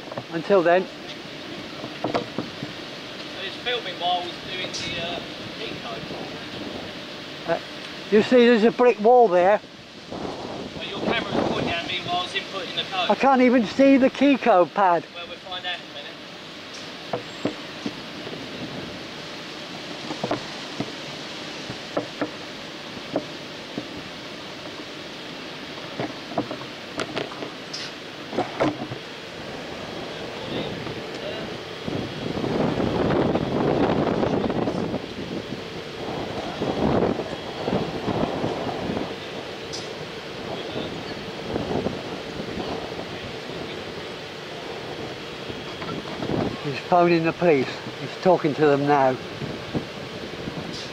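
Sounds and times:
wind buffeting microphone: 0.0s - 14.5s, 16.5s - 50.9s.

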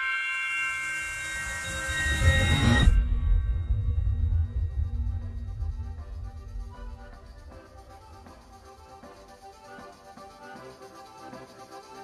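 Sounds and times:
hissing swell: 0.2s - 10.1s
deep rumble: 1.4s - 9.1s.

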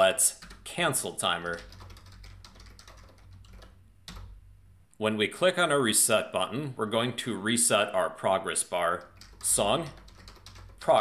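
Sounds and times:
low steady hum: 0.0s - 11.0s
computer keyboard typing: 0.3s - 0.8s, 1.4s - 4.4s, 9.0s - 11.0s.

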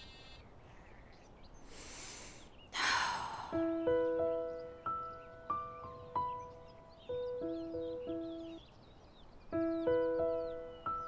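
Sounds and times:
soft airy hiss: 0.0s - 3.8s.

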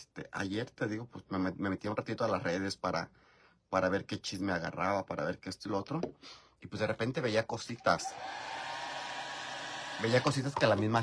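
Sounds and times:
electric blower running: 8.0s - 10.6s.

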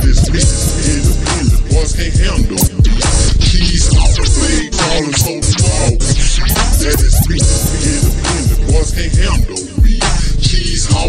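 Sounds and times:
slowed rap over bass-heavy beat: 0.0s - 11.0s.

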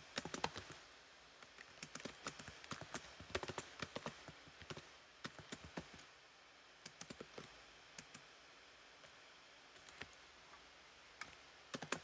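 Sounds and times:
keyboard typing: 0.1s - 0.8s, 1.5s - 6.0s, 6.8s - 8.2s, 11.2s - 12.0s.

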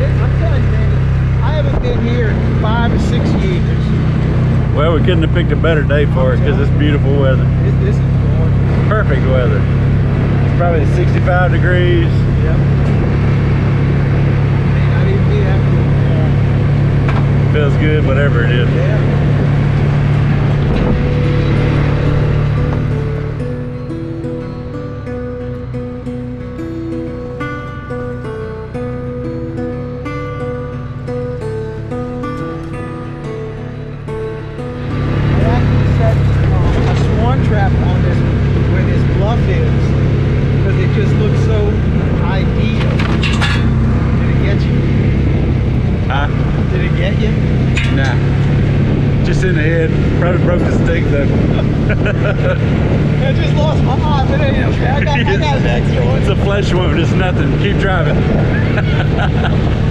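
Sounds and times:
rattling in open cab: 0.0s - 59.9s
vehicle engine running: 0.0s - 59.9s
wind: 0.0s - 59.9s
background music with stepping melody: 19.1s - 37.2s.

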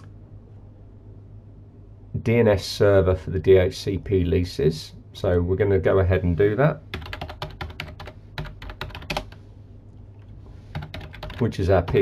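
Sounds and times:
computer keyboard typing: 6.9s - 9.4s, 10.7s - 12.0s.

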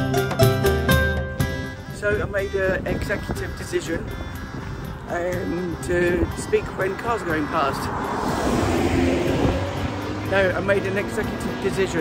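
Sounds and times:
car passing close by: 6.6s - 12.0s.

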